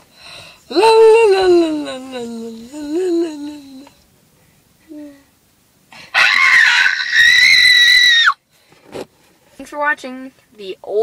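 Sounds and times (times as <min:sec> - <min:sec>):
girl screaming: 0:06.2 - 0:08.4.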